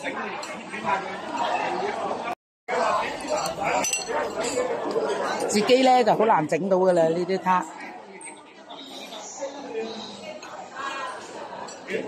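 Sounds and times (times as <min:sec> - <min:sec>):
crowd chatter: 0:00.0 - 0:12.0
china clinking: 0:03.2 - 0:04.6.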